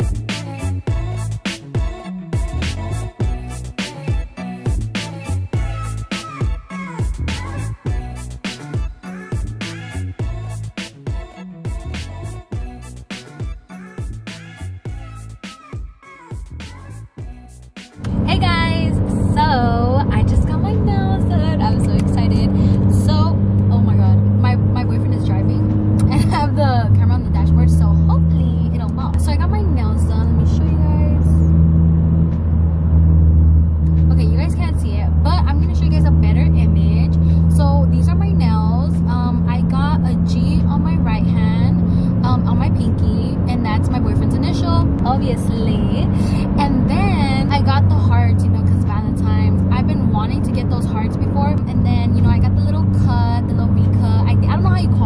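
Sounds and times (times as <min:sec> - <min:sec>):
engine drone: 0:00.0 - 0:15.4, 0:16.4 - 0:55.0
road noise in car cabin: 0:18.0 - 0:55.0
woman talking: 0:18.1 - 0:31.5, 0:34.0 - 0:55.0.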